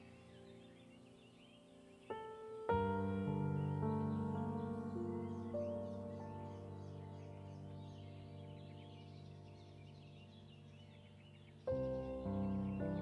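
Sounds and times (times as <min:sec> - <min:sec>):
faint bird chirps: 0:00.0 - 0:13.0
soft new-age piano music: 0:00.0 - 0:13.0.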